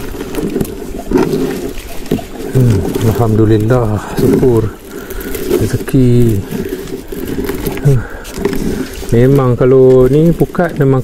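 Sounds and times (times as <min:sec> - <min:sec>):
crackles: 0:00.0 - 0:11.0
rough low rumbling: 0:00.0 - 0:11.0
man speaking: 0:02.5 - 0:04.8, 0:05.6 - 0:06.5, 0:07.7 - 0:08.2, 0:09.0 - 0:11.0.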